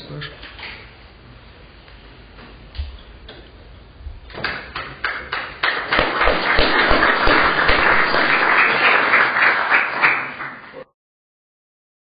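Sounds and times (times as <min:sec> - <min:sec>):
audience applauding: 0:05.0 - 0:10.9.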